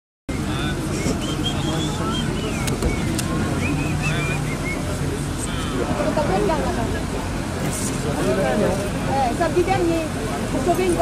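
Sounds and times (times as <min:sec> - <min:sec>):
indistinct voices talking: 0:00.3 - 0:11.0.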